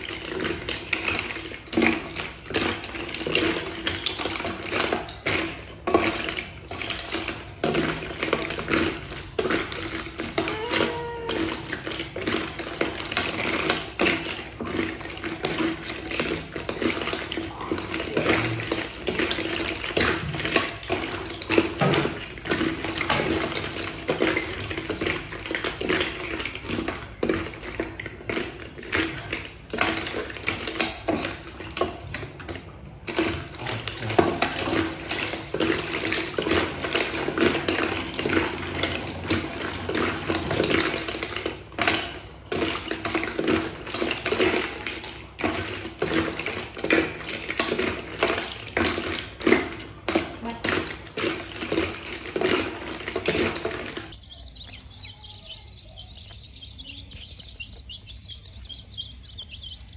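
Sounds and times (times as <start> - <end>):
snail shells clattering in a pot: 0.0 - 59.9.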